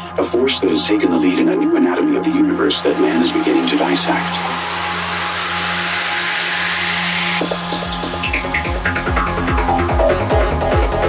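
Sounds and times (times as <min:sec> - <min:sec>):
psytrance music: 0:00.0 - 0:11.0.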